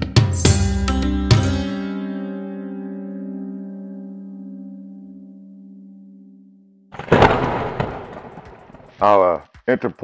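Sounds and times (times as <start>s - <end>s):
explosion with crackle: 7.0s - 9.1s.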